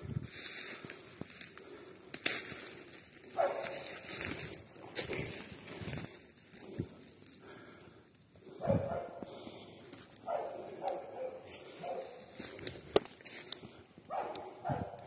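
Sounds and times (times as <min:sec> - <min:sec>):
dog barking in short bursts: 0:03.4 - 0:03.7, 0:14.1 - 0:15.0.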